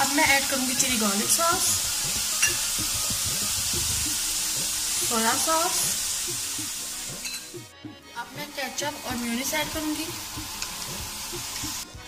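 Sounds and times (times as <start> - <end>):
chicken sizzling in a pan: 0.0 - 7.6, 8.6 - 11.9.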